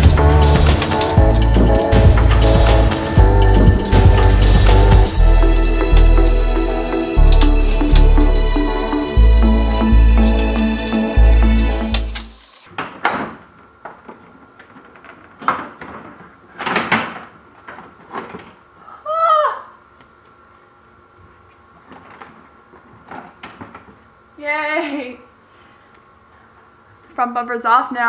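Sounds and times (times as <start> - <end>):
background music: 0.0 - 12.4
woman exclaiming: 18.9 - 19.8, 24.4 - 25.3.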